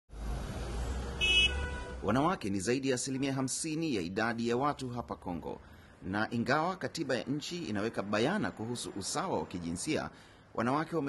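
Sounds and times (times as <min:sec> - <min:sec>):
traffic rumble: 0:00.1 - 0:11.0
short car horn toot: 0:01.2 - 0:02.0.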